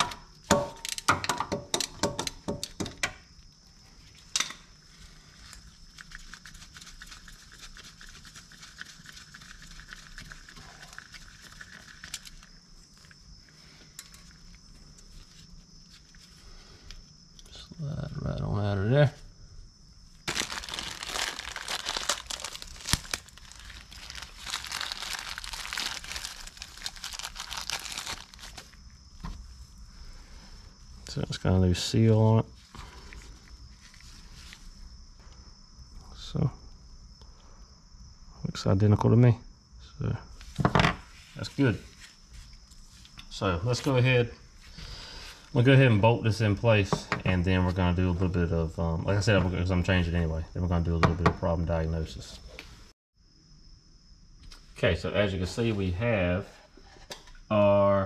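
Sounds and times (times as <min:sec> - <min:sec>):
plastic packaging crinkling and tearing: 0:20.2 - 0:28.8.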